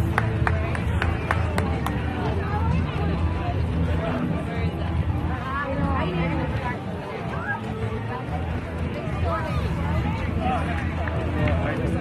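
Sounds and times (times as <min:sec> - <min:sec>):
people talking and calling out: 0:00.0 - 0:12.0.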